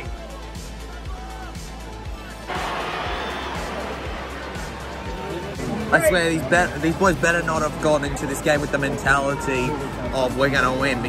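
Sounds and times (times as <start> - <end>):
music: 0.0 - 11.0
stadium crowd roaring: 0.0 - 11.0.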